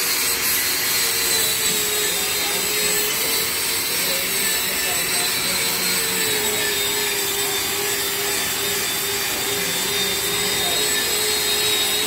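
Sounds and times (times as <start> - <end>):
workshop machine humming: 0.0 - 12.0.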